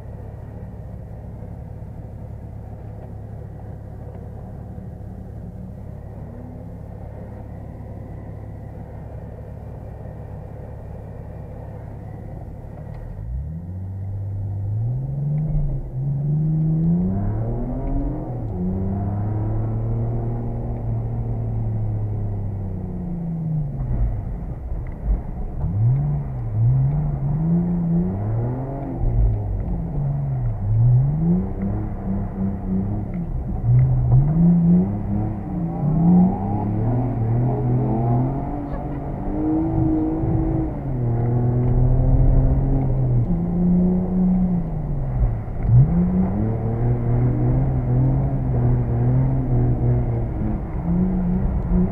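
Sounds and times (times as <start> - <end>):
car engine revving: 0.0 - 51.9.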